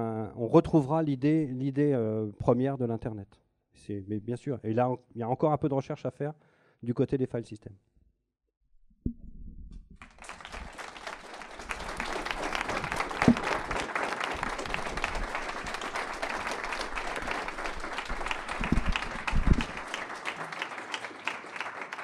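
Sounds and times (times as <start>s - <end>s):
audience applauding: 10.0s - 22.0s.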